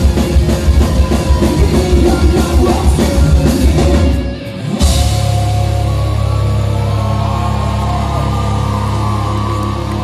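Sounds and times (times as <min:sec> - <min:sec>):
rock band playing live: 0:00.0 - 0:10.0.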